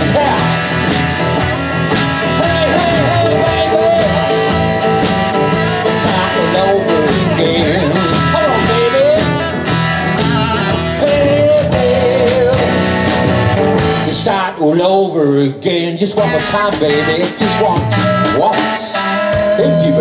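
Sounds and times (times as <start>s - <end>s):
lead electric guitar bending notes: 0.0s - 14.3s, 16.1s - 20.0s
drums with steady cymbal beat: 0.0s - 14.4s, 16.2s - 20.0s
electric bass: 0.0s - 20.0s
rhythm guitar: 0.0s - 20.0s.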